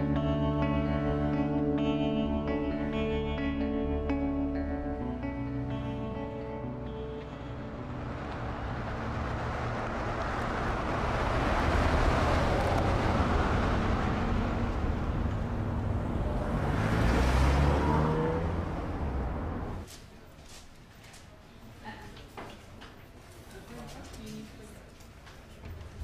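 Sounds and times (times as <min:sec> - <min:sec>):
vehicles passing: 0:00.0 - 0:19.9.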